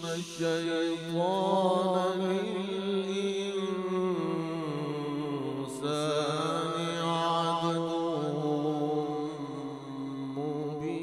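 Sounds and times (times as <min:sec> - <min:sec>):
man chanting over loudspeaker: 0:00.0 - 0:11.0.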